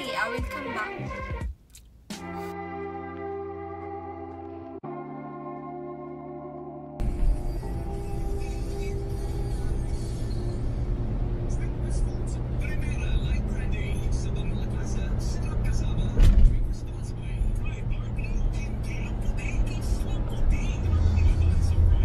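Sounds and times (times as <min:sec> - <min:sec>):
music with steady beat: 0:00.0 - 0:06.3.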